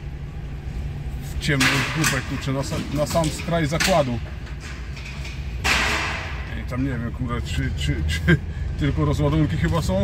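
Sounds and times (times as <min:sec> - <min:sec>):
truck engine running: 0:00.0 - 0:10.0.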